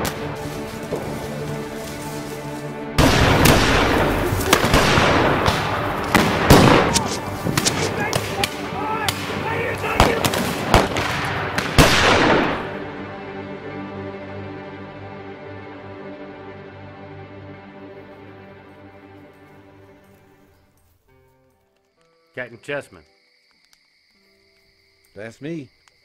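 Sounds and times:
background music: 0.0s - 23.5s
rifle gunfire crackle: 3.0s - 12.7s
men shouting: 6.8s - 10.4s.

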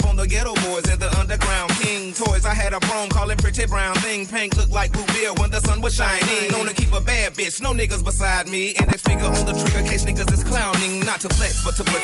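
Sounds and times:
rapping over a beat: 0.0s - 12.0s
deep pulsing bass beat: 8.8s - 10.7s.

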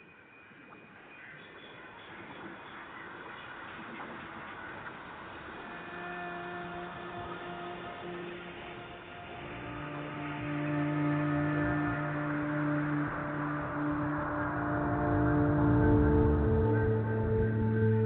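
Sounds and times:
ambient electric guitar drones: 0.0s - 18.0s.

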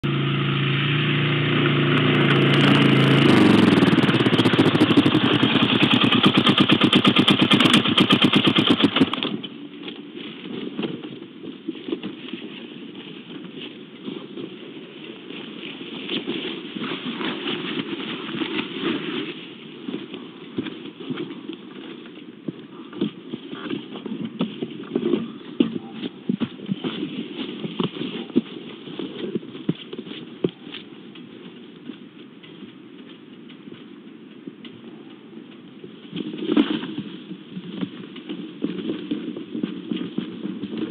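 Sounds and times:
motor engine running: 0.0s - 11.2s
rustling: 1.7s - 40.9s.

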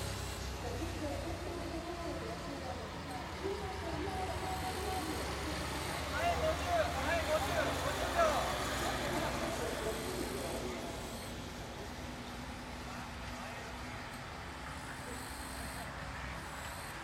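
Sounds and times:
voices calling out loudly: 0.6s - 12.0s.

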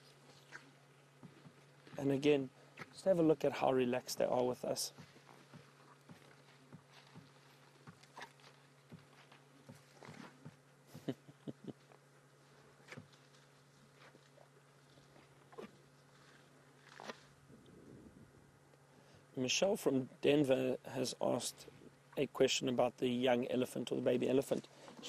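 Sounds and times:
steady low hum: 0.0s - 25.0s
elephants feeding snaps and crunches: 5.0s - 10.5s, 11.8s - 17.4s.

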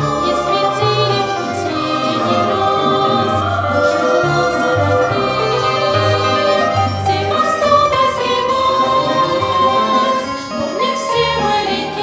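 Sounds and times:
children's choir singing: 0.0s - 12.0s
orchestral accompaniment: 0.0s - 12.0s.

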